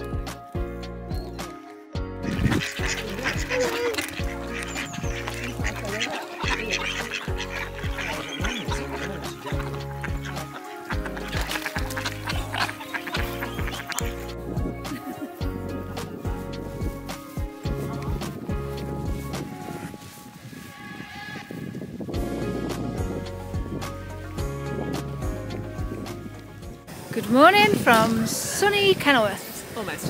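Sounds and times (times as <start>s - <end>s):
background music with steady beat: 0.0s - 20.4s, 22.2s - 27.0s
ducks quacking: 2.2s - 15.5s.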